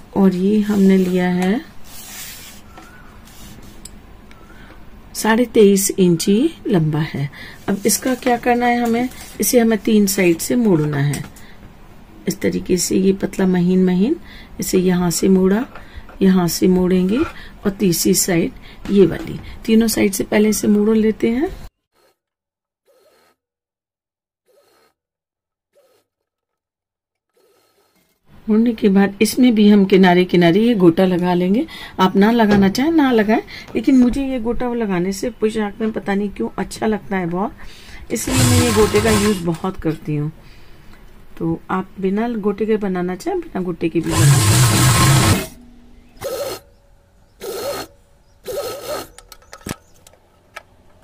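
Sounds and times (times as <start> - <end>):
sewing machine stitching: 22.9 - 23.4, 24.5 - 25.0, 25.7 - 26.5, 27.3 - 28.3, 38.2 - 39.6, 44.0 - 45.6, 47.4 - 47.9, 48.5 - 49.2.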